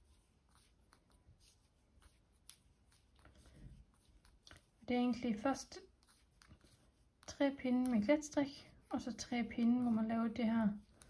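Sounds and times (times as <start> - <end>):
knitting needles ticking and rustling: 0.0 - 11.0.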